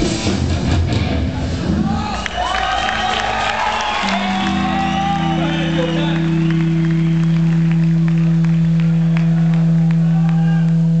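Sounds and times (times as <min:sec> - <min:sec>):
low electric amplifier drone: 0:02.8 - 0:11.0.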